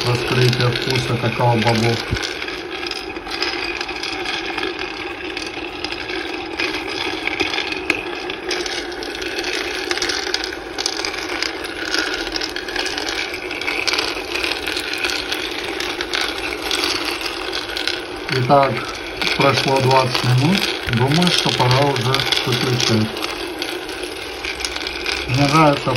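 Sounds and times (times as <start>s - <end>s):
beans rattling in roaster pan: 0.0s - 25.9s.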